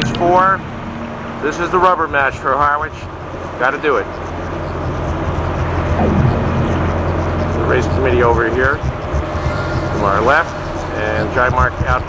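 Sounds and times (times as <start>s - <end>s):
motorboat engine rumbling: 1.6s - 12.0s.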